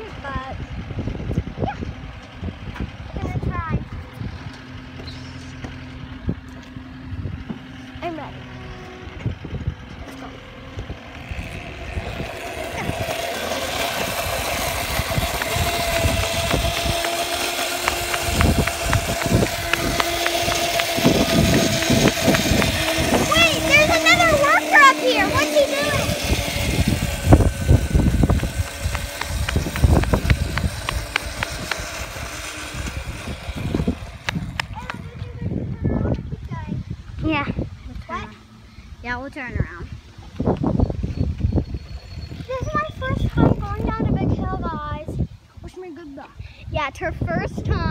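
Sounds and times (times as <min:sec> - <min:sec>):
wind on microphone: 0:00.0 - 0:07.8, 0:08.6 - 0:10.0, 0:10.6 - 0:45.8, 0:46.4 - 0:47.9
electric scooter motor whining: 0:00.0 - 0:45.3.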